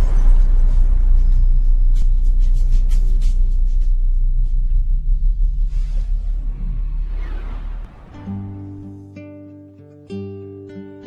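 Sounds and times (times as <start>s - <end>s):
electronic jingle with deep bass: 0.0s - 9.2s.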